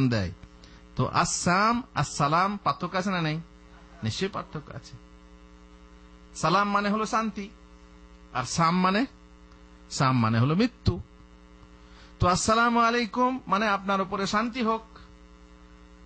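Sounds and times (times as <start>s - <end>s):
man speaking: 0.0s - 0.4s, 1.0s - 5.0s, 6.3s - 7.6s, 8.3s - 9.2s, 9.9s - 11.1s, 12.2s - 15.1s
electrical mains hum: 0.0s - 16.0s.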